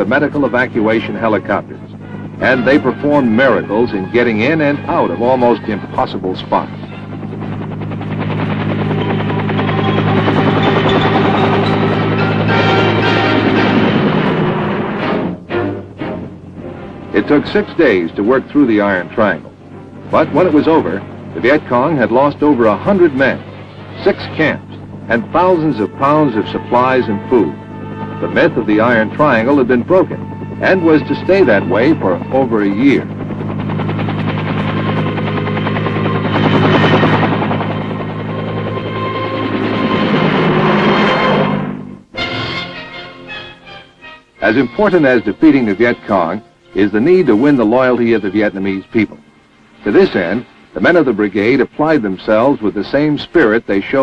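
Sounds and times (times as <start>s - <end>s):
helicopter rotor beating: 0.0s - 54.0s.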